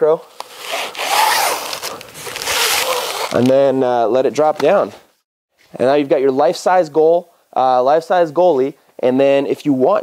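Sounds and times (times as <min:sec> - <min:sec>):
velcro strip rasping: 0:00.4 - 0:03.6.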